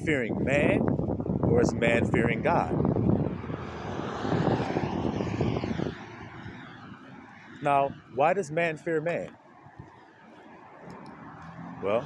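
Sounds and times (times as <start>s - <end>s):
crackly low microphone rumble: 0.0s - 6.7s
rushing noise: 2.3s - 8.2s.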